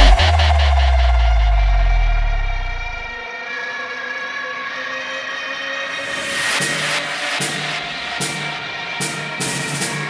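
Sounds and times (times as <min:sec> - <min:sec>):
sustained synth chord: 0:00.0 - 0:03.4.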